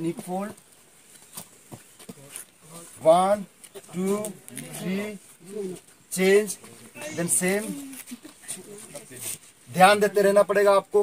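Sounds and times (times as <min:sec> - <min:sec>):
man counting aloud: 0:02.9 - 0:08.0.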